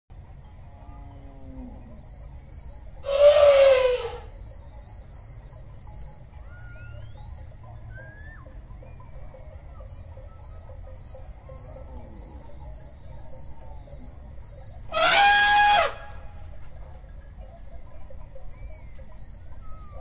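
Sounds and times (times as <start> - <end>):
insects chirping: 0.1 - 20.0
bird whistles: 3.0 - 4.3
elephant trumpeting: 3.0 - 4.3, 14.9 - 16.2.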